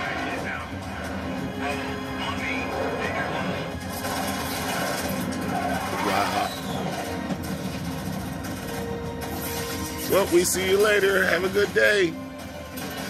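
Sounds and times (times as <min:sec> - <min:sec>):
voices from television: 0:00.0 - 0:03.8
background music from television: 0:00.0 - 0:13.0.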